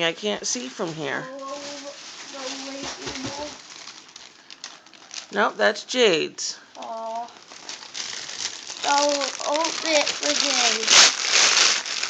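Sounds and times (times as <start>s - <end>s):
wrapping paper rustling: 0.5s - 5.4s, 6.7s - 12.0s.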